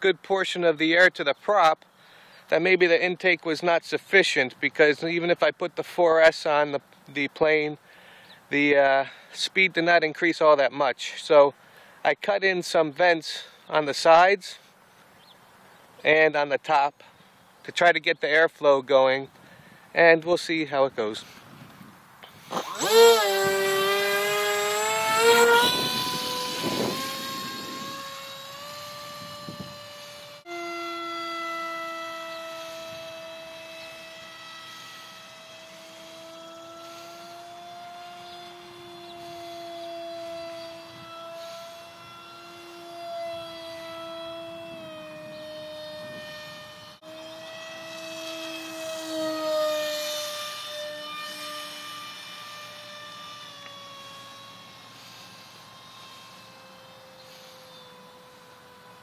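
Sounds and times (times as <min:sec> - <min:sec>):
rc plane motor whine: 0:19.3 - 0:59.0.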